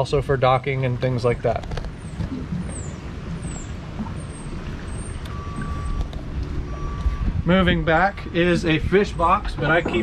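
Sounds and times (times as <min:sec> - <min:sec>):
outdoor background noise: 0:00.0 - 0:10.0
wind rumbling on microphone: 0:01.5 - 0:10.0.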